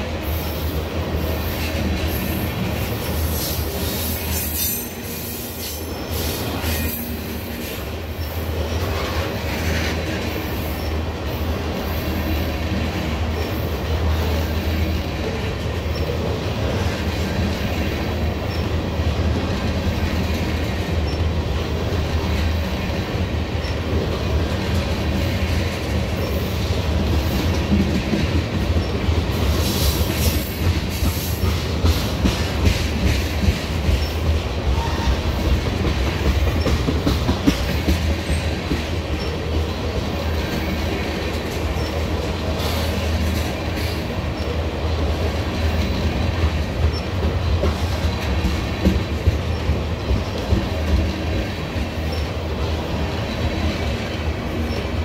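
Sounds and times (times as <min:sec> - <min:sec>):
clickety-clack over rail joints: 0:00.0 - 0:55.0
steel wheels rumbling on rails: 0:00.0 - 0:55.0.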